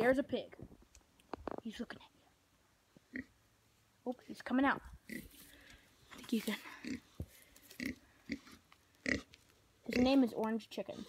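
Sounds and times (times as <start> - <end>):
pig grunting: 7.8 - 9.3.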